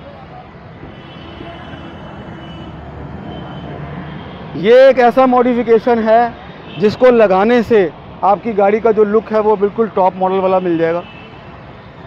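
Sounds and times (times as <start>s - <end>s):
vehicle traffic noise: 0.0s - 12.0s.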